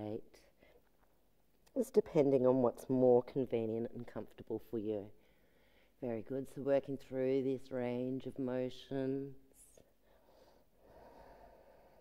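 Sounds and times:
faint drawn-out breath: 5.2s - 6.0s, 9.9s - 12.0s.

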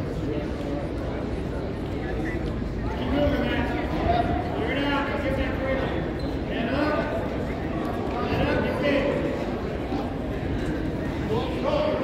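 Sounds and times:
echoing crowd chatter and calls: 0.0s - 12.0s.

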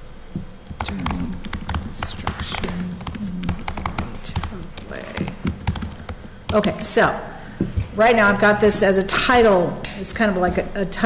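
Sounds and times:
keyboard typing: 0.6s - 6.8s
soft voice sounds: 0.8s - 5.4s.

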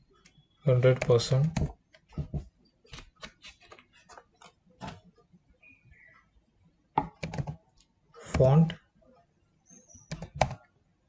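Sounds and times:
keyboard keystroke clicks: 10.1s - 10.6s.

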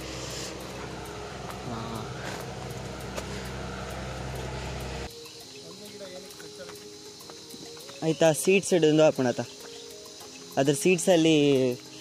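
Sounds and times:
vehicle engine running: 0.0s - 5.1s.

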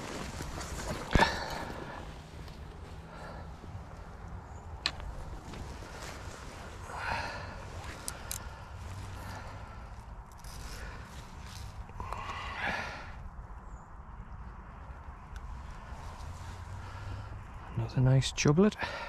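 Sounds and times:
landing net and grass rustling: 0.0s - 13.0s.

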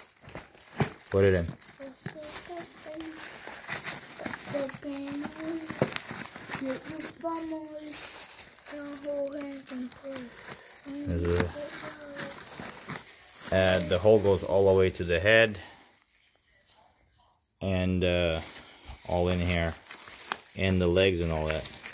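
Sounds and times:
plastic wrappers crinkling: 0.0s - 16.5s, 18.3s - 21.9s.

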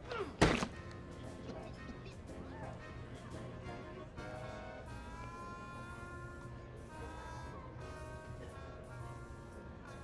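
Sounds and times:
background music: 0.0s - 10.0s
heavy punch thump: 0.4s - 0.7s.

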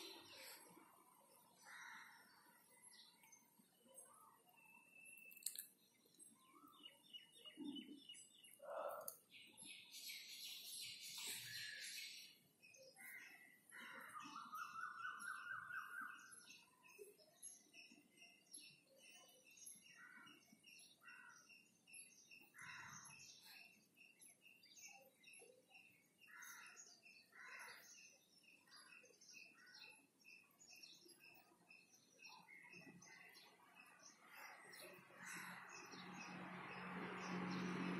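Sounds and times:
bird chirping: 0.0s - 37.9s
bird trill: 6.5s - 21.4s.

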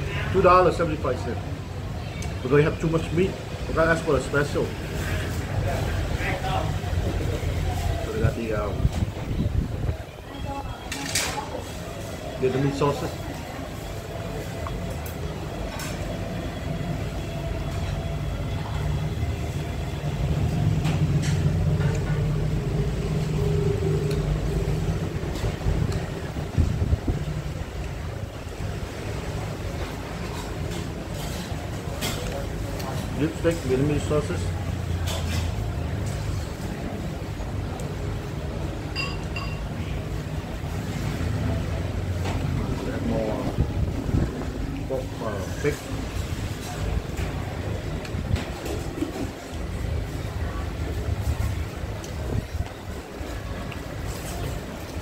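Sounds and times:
road traffic rumbling: 0.0s - 55.0s.

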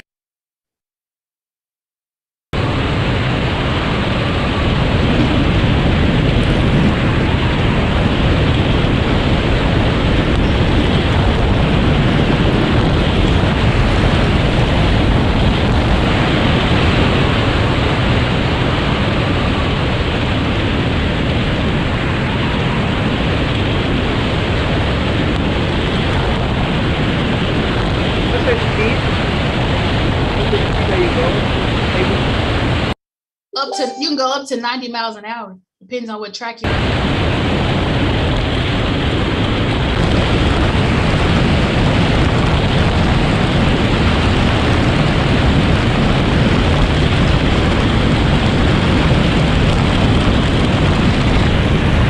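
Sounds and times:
bobsled rushing roar: 2.6s - 33.0s, 36.7s - 52.0s.

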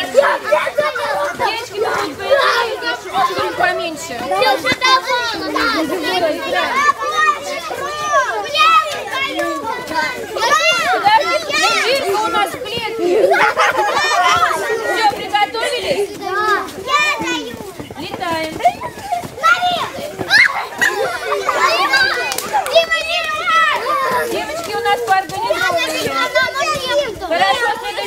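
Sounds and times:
children talking and shouting: 0.0s - 28.0s
children shrieking: 4.3s - 15.2s, 18.7s - 28.0s.

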